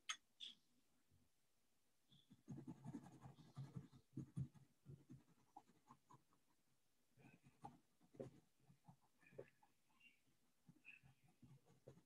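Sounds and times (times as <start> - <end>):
pencil shading on paper: 2.1 - 12.0.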